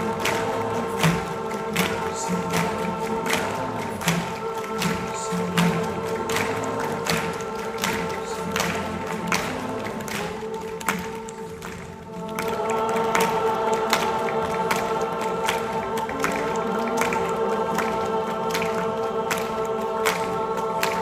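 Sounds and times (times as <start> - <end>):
audience singing in harmony: 0.0 - 21.0.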